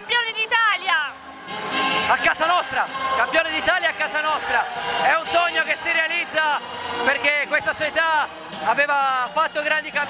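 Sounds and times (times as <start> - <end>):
man speaking: 2.0 - 10.0.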